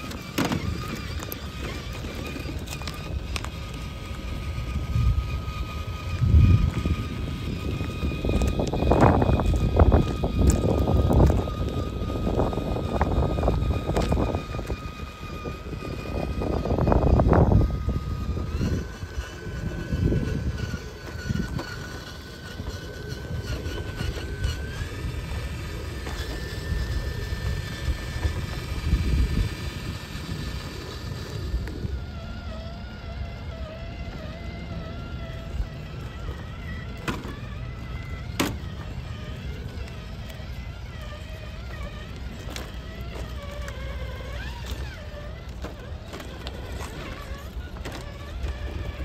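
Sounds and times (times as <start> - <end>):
electric motor high whine: 0.0 - 49.0
tyres crunching over gravel: 0.0 - 49.0.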